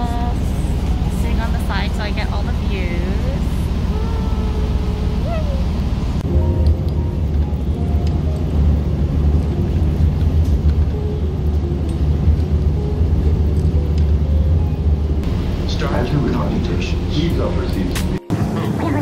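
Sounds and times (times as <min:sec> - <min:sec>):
bus engine and road noise: 0:00.0 - 0:19.0.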